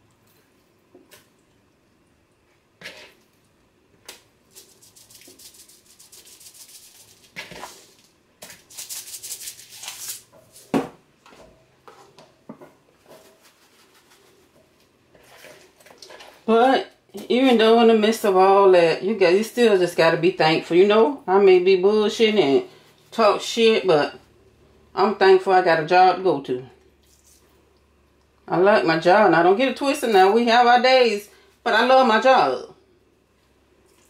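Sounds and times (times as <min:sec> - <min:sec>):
seasoning shaker rattling: 0:04.5 - 0:10.7, 0:13.0 - 0:14.5.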